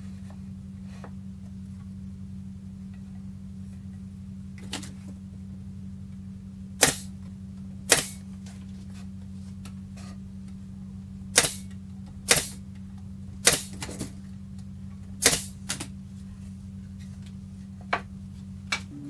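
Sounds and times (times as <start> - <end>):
low hum: 0.0 - 19.0
pneumatic nailer shots: 6.8 - 7.2, 7.9 - 8.2, 11.3 - 12.6, 13.4 - 14.1, 15.2 - 15.9.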